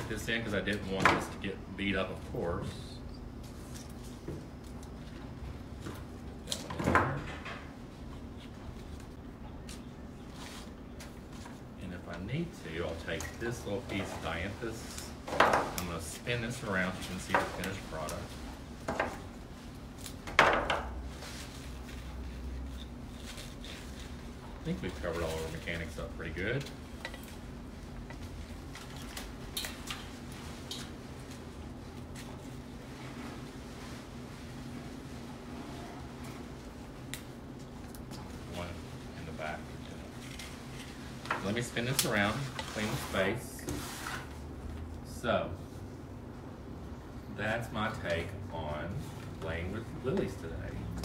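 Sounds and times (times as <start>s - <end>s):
low background hum: 0.0s - 51.0s
clicks and rustles of flower stems: 8.2s - 18.5s, 21.0s - 34.3s, 36.2s - 43.4s.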